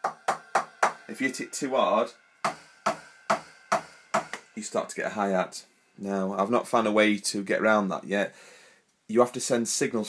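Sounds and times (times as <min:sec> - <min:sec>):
drumstick hits on electronic pad: 0:00.0 - 0:06.1.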